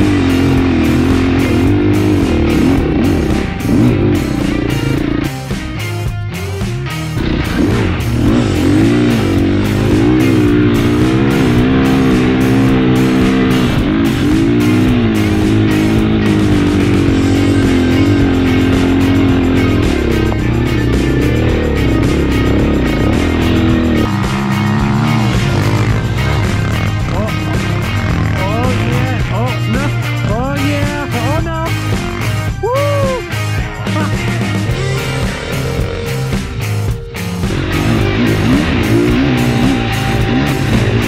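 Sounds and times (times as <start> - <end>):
background music: 0.0 - 41.0
dirt bike engine revving: 0.0 - 41.0.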